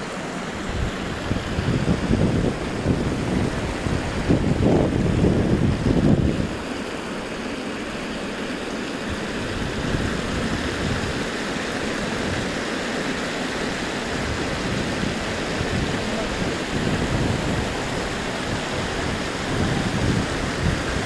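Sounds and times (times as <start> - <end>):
water spilling over fountain edge: 0.0 - 21.0
wind buffeting microphone: 0.4 - 6.9, 9.0 - 12.7, 13.4 - 21.0.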